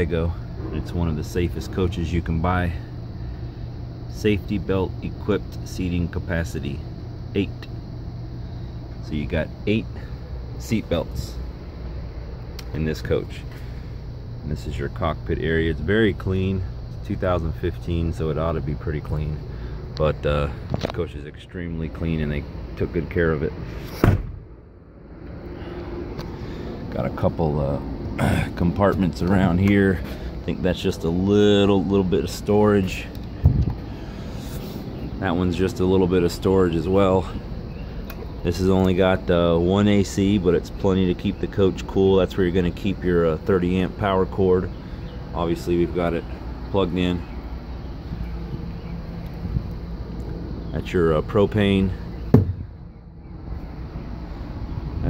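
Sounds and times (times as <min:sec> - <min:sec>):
faint steady hum: 0:00.0 - 0:55.0
outdoor background noise: 0:00.0 - 0:55.0
vehicle door slamming shut: 0:23.9 - 0:24.5, 0:52.3 - 0:52.8.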